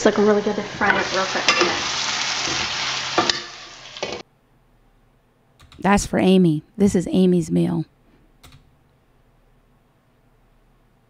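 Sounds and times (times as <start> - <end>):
food sizzling in a frying pan: 0.0 - 4.2
utensil stirring in pan: 0.1 - 4.2.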